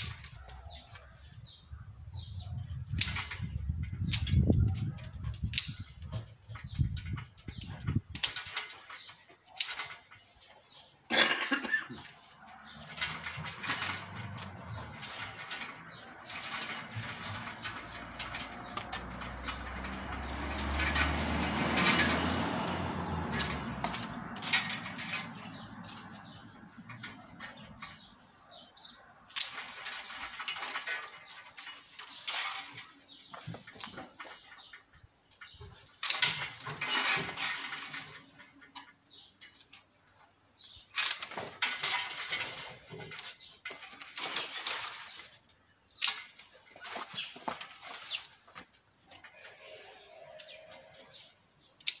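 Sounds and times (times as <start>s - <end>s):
rustling and scraping of canes: 0.0s - 52.0s
pruning shears snipping: 43.2s - 48.7s, 51.8s - 52.0s.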